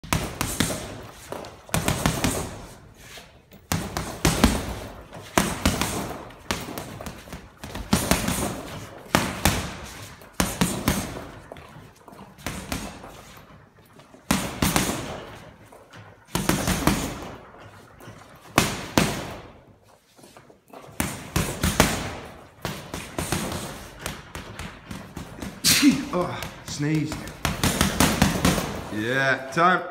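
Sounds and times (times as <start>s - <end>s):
gloves punching heavy bag: 0.0s - 29.3s.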